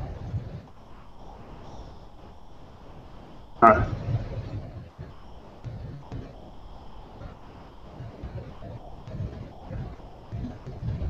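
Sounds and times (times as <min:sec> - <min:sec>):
soft low rumbling bumps: 0:03.4 - 0:11.0.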